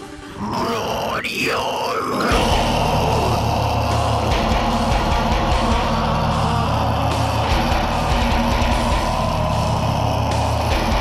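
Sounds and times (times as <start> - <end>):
metalcore vocals: 0.2 - 11.0
distorted guitars and drums: 0.4 - 11.0.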